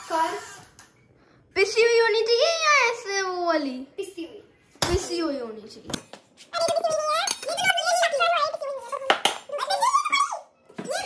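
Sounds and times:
child making high-pitched sounds: 6.6s - 11.0s.

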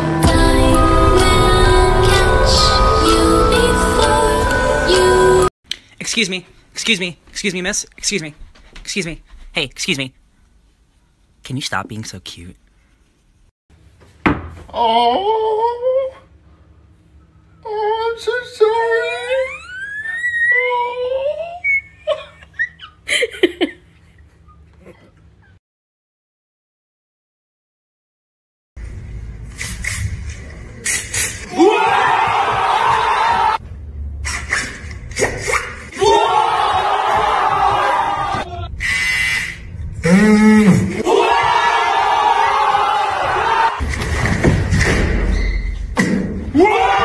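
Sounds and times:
voices shouting together: 35.9s - 38.7s, 40.9s - 43.8s.

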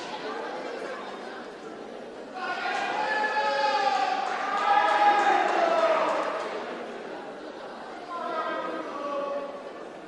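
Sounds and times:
person's voice echoing in hall: 5.0s - 10.0s.

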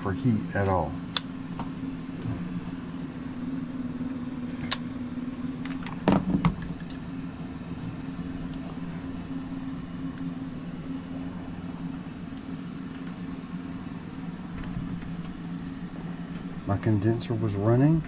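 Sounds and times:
furnace blower humming: 0.0s - 18.0s.

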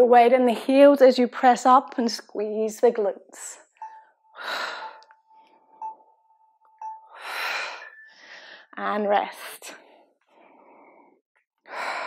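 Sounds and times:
woman breathing hard: 4.3s - 5.8s, 7.1s - 8.8s, 9.8s - 12.0s.

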